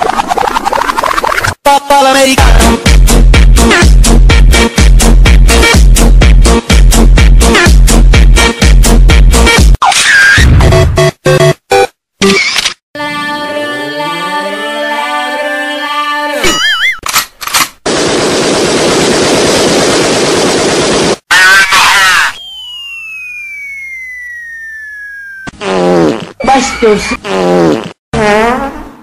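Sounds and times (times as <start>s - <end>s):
gliding whistle tones: 21.9s - 25.5s.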